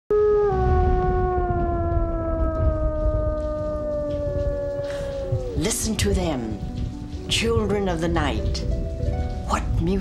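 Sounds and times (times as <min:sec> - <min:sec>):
wolf howling: 0:00.1 - 0:05.8
low rumble: 0:00.1 - 0:10.0.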